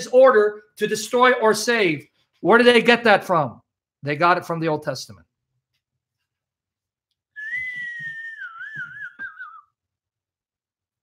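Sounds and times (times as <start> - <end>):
person whistling long note: 7.4 - 9.8.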